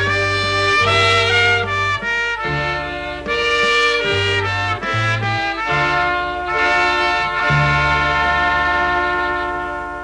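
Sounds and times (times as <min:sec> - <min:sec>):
brass band sustained chord: 0:00.0 - 0:10.0.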